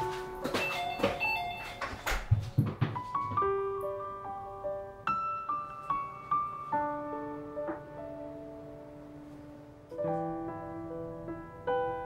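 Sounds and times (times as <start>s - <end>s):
soft background piano music: 0.0s - 12.0s.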